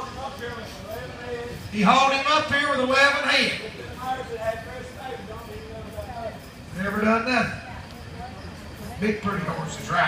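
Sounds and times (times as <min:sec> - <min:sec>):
faint people talking: 0:00.0 - 0:10.0.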